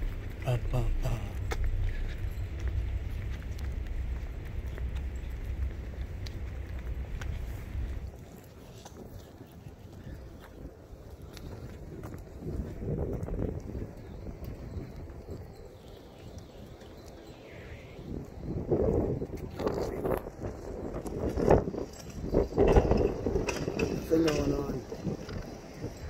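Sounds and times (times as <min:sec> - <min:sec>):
footsteps outdoors: 0:00.0 - 0:26.0.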